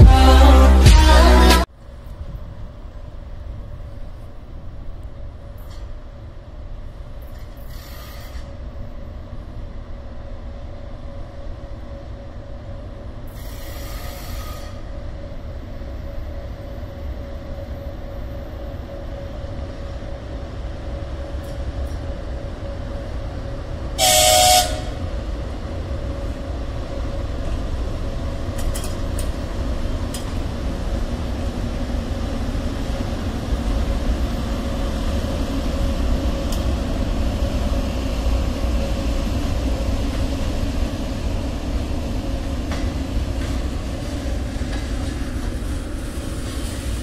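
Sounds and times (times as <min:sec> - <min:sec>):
electric locomotive rumble and hum: 0:00.0 - 0:47.0
locomotive horn blast: 0:24.0 - 0:25.0.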